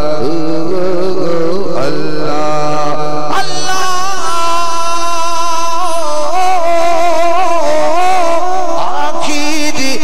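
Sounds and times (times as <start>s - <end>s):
person singing long wavering notes: 0.0s - 10.0s.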